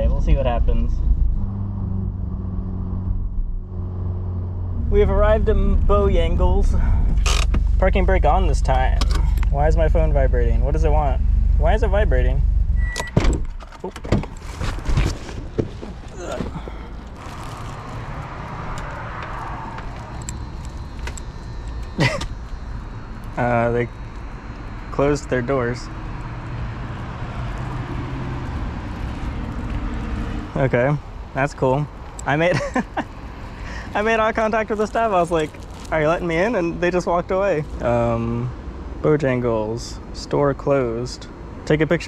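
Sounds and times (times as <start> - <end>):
car engine droning: 0.0 - 42.0.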